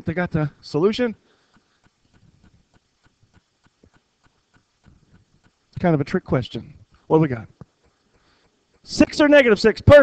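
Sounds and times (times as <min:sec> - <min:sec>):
faint light clicks and taps: 0:01.4 - 0:05.8, 0:06.6 - 0:09.2.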